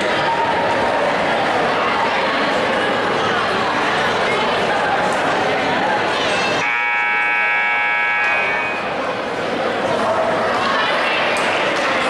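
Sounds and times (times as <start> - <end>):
crowd noise: 0.0 - 12.0
buzzing scoreboard horn: 6.6 - 9.1.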